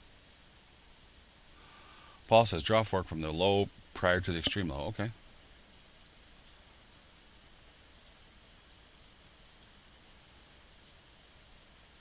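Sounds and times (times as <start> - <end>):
faint room-tone hiss: 0.0 - 12.0.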